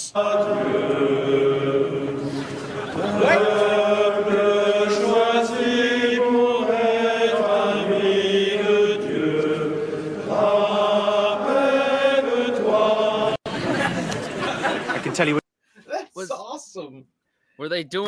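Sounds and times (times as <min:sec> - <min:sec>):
choir chanting: 0:00.0 - 0:13.9.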